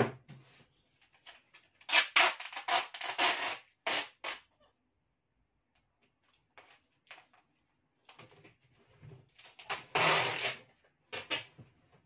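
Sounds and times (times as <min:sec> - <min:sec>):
adhesive tape pulled off roll: 0:01.8 - 0:04.5, 0:09.6 - 0:11.5.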